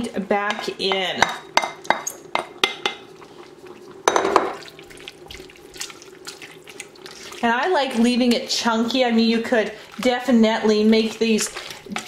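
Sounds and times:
wet slosh of stirred broth: 4.6s - 8.4s.

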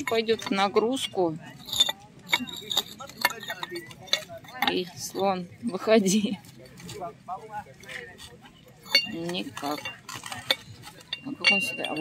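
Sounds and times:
figurine clinking inside porcelain vase: 0.0s - 5.4s, 8.8s - 12.0s.

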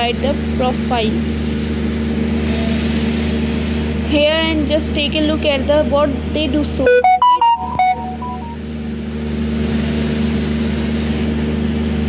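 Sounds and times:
steady mechanical hum: 0.0s - 7.1s.

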